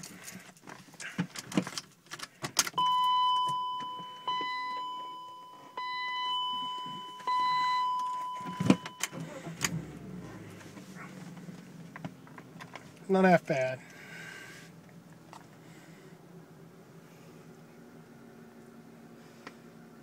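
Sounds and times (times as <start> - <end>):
car engine starting and idling: 0.0 - 20.0
ignition key clicks: 7.2 - 9.8.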